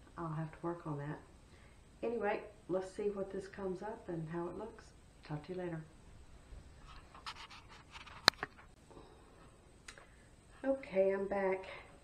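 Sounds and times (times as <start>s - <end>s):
faint rustling handling noises: 6.2s - 8.8s.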